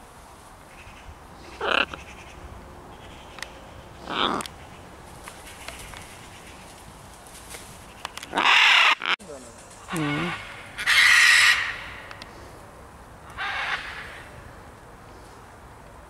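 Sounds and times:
macaws squawking: 0.7 - 6.8, 7.8 - 9.2, 9.8 - 12.3, 13.2 - 14.3.

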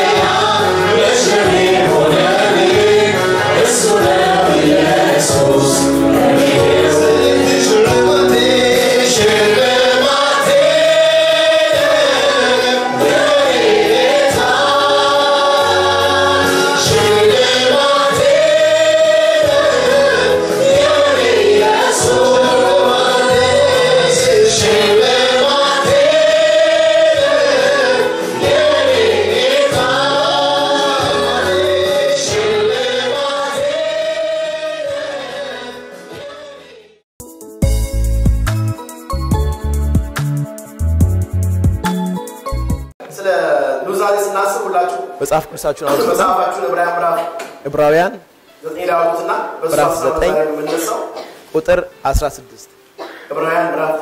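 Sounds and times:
instrumental accompaniment: 0.0 - 34.6, 37.2 - 42.9
female choir singing: 0.0 - 37.0
man singing lead: 0.6 - 13.6, 14.2 - 33.8.

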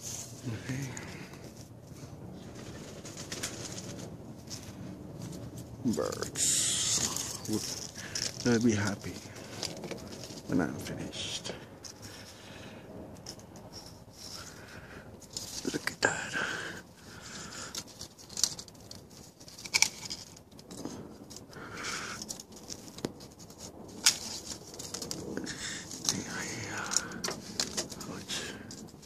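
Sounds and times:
rustling of leafy branches: 0.0 - 29.0.

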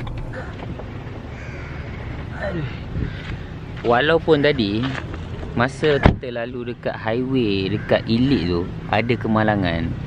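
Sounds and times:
harsh bird calls: 0.4 - 4.8, 5.9 - 10.0.

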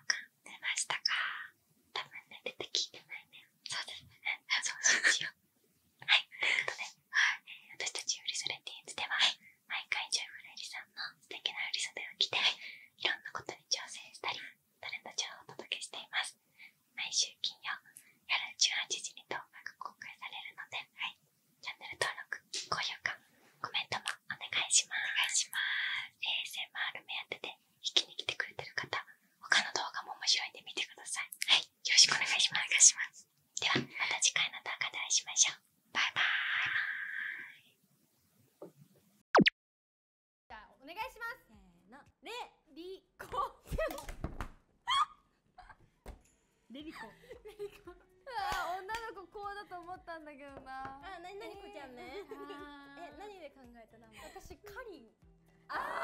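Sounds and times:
soft whispered talking: 0.0 - 5.4, 6.0 - 16.4, 17.0 - 37.7.

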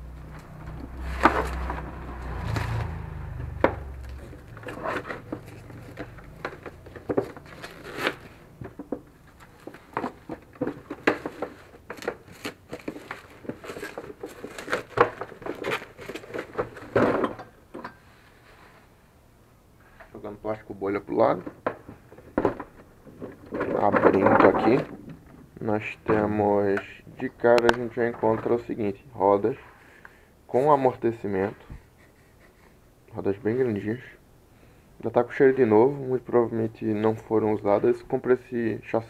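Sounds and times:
bubble wrap crinkling: 4.0 - 8.5, 9.3 - 16.9.

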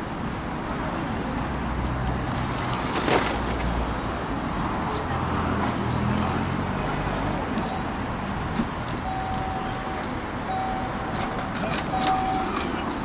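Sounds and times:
city street traffic hum: 0.0 - 13.0.

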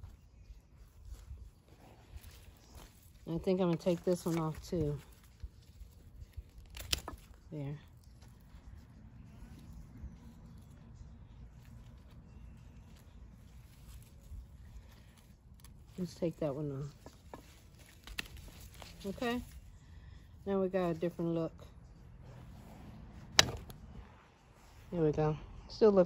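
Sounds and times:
faint handling noise: 0.0 - 25.0
garden pruners snipping stem: 2.6 - 7.8, 23.2 - 23.9
garden clippers snipping: 5.8 - 7.5, 15.2 - 19.5, 23.2 - 23.8.

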